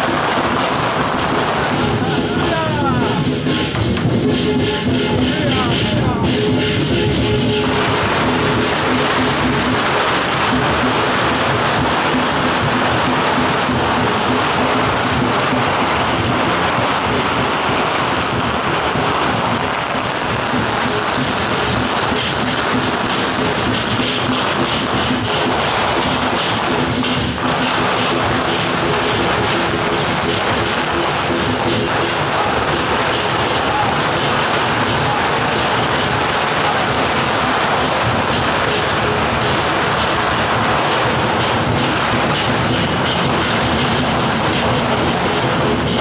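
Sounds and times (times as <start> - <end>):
firecrackers crackling: 0.0 - 46.0.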